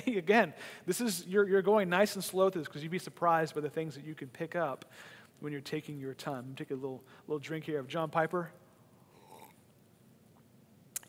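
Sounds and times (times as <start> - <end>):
faint sip of water: 9.1 - 9.7.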